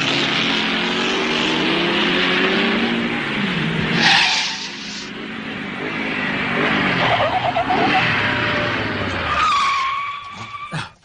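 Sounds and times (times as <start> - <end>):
vehicle noise: 0.0 - 11.0
long tyre screech: 3.8 - 5.2, 6.6 - 11.0.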